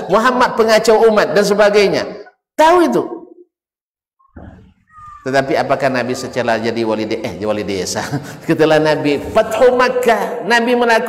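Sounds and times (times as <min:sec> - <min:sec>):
man speaking: 0:05.2 - 0:11.0.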